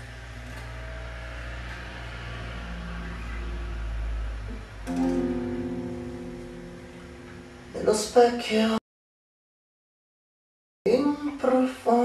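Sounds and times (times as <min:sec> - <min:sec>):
guitar chords ringing: 0:04.8 - 0:08.4.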